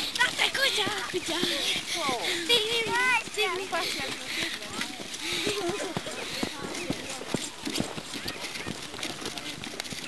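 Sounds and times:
people talking outdoors: 0.0s - 10.0s.

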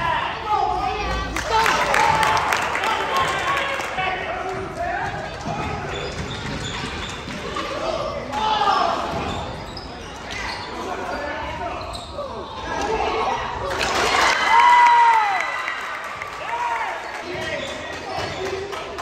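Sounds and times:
sneakers squeaking: 4.5s - 13.6s, 16.9s - 18.7s.

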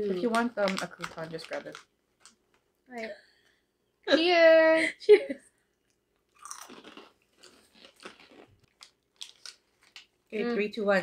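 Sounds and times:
people chewing crunchy snack: 5.7s - 10.2s.

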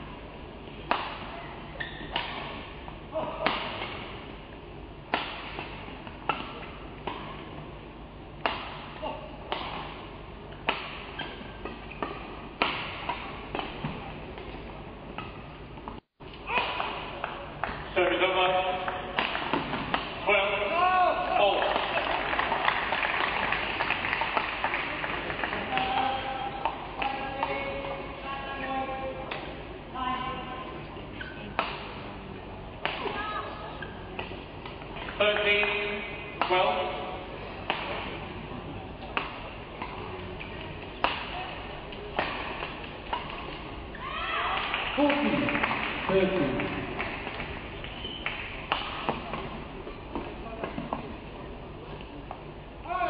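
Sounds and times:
racket hitting shuttlecock: 0.8s - 4.3s, 5.1s - 7.6s, 8.4s - 17.9s, 18.7s - 20.3s, 31.2s - 32.0s, 32.8s - 33.2s, 36.4s - 38.2s, 39.0s - 51.0s
shoes squeaking on court: 1.4s - 2.2s, 47.7s - 48.5s.

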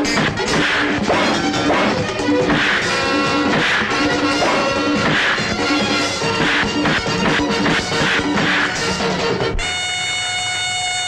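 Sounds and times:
punch sound effects: 0.0s - 8.8s
fight scene background music: 0.0s - 9.6s.

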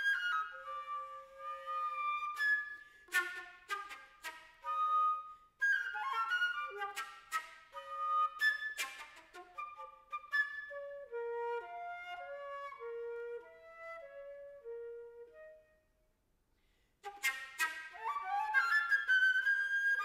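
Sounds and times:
solo flute playing: 0.0s - 16.0s, 17.0s - 20.0s.

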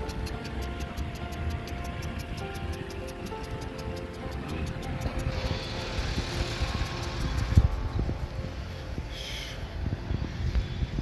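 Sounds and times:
fast regular ticking: 0.0s - 9.4s
background music with held notes: 0.0s - 11.0s
sprinklers hissing water: 0.0s - 11.0s
low rumble: 1.4s - 11.0s.

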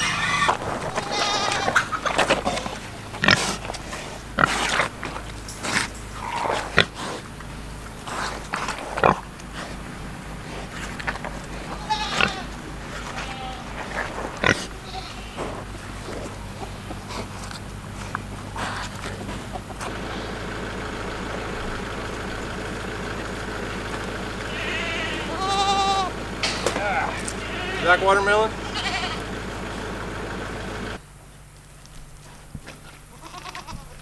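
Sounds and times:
goats bleating: 0.0s - 19.6s, 24.4s - 29.4s, 32.8s - 34.0s
pigs chewing and crunching: 0.0s - 34.0s.

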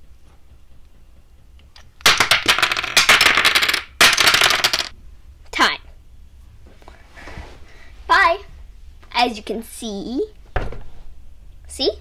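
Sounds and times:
wooden dominoes clattering: 1.9s - 4.9s.

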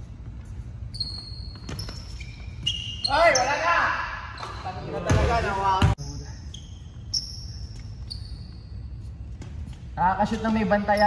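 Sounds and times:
sneakers squeaking on wood: 0.1s - 11.0s.

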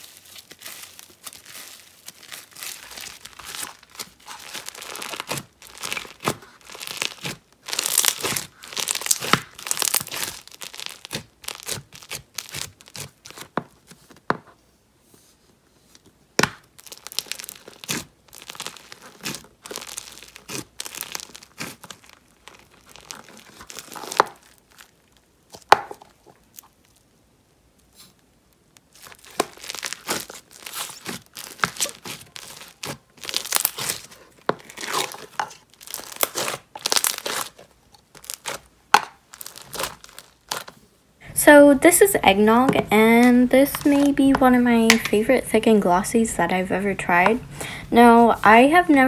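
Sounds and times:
slime crackling and tearing: 0.0s - 14.1s, 16.4s - 27.1s, 27.8s - 40.8s, 41.7s - 45.4s.

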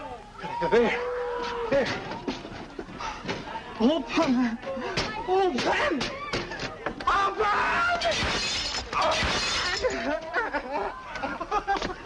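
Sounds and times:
raised voices: 0.0s - 11.5s
window glass shattering: 8.0s - 10.1s.

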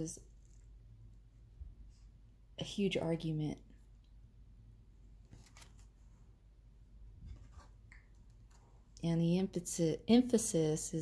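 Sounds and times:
card rustling and scraping: 5.2s - 6.2s, 7.2s - 8.7s.

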